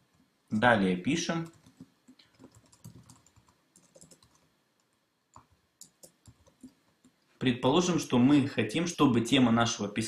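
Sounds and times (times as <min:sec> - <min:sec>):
faint keyboard typing: 0:01.3 - 0:07.3.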